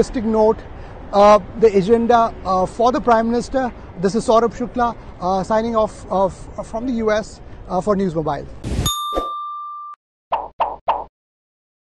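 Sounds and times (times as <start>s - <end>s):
quick sound-effect hits: 8.6s - 9.3s.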